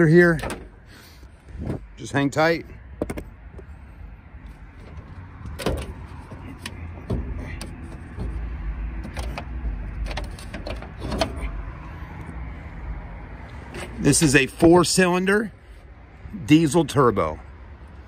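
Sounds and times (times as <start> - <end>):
hood catches clicking and knocking: 0.3 - 0.8, 4.8 - 11.6.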